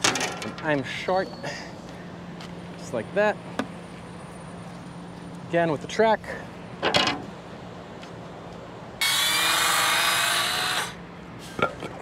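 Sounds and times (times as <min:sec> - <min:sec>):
circular saw cutting wood: 0:09.0 - 0:11.0.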